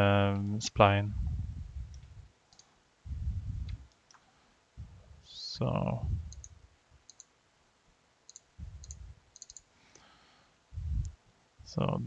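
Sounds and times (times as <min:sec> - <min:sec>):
low rumbling bursts of noise: 0:00.1 - 0:02.4, 0:03.0 - 0:03.9, 0:04.7 - 0:07.0, 0:08.6 - 0:09.3, 0:10.6 - 0:12.0
computer mouse clicks: 0:01.9 - 0:02.7, 0:06.3 - 0:07.3, 0:08.3 - 0:10.1.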